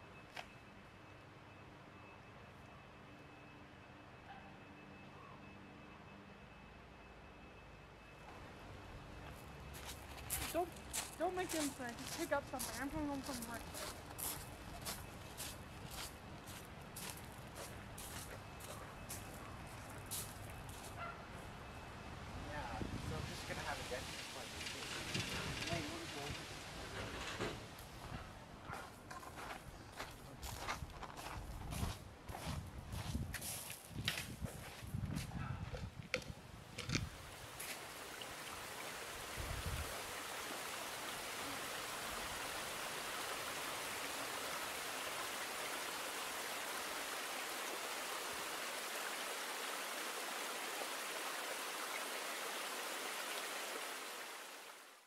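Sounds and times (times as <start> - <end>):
water rushing over rocks: 37.4 - 54.9.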